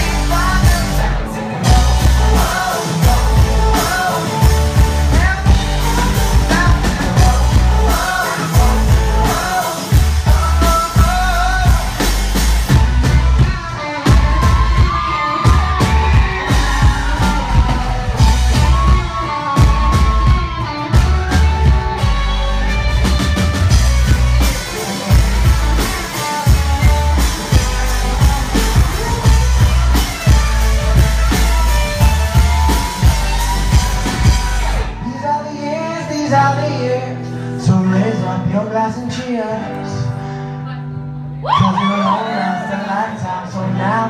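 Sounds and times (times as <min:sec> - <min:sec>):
person singing: 0:00.0 - 0:40.2
live rock band: 0:00.0 - 0:44.0.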